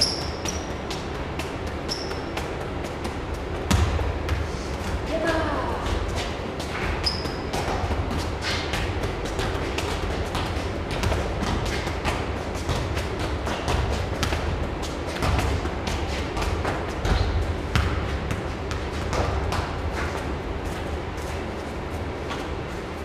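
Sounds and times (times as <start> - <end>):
football thuds on concrete: 0.0 - 4.5, 5.9 - 20.1.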